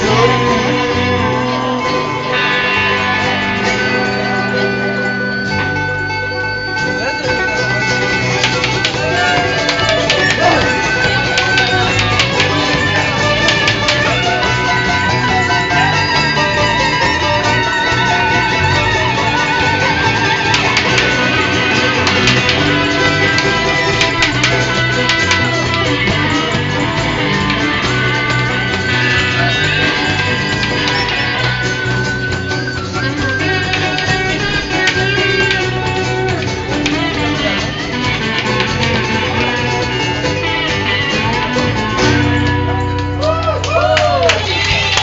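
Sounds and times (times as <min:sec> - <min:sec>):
live country band playing: 0:00.0 - 0:45.0
strummed guitars: 0:00.0 - 0:45.0.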